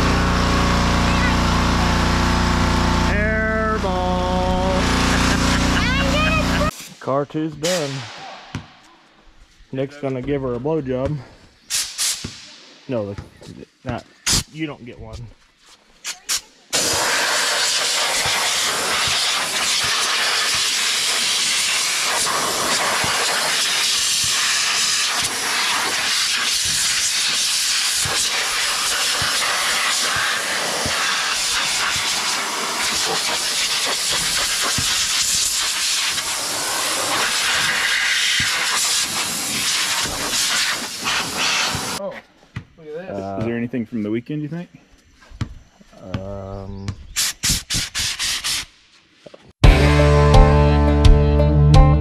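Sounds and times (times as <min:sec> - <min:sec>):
compressed air blow gun hissing: 0:11.7 - 0:12.6, 0:16.8 - 0:42.0, 0:47.2 - 0:48.7.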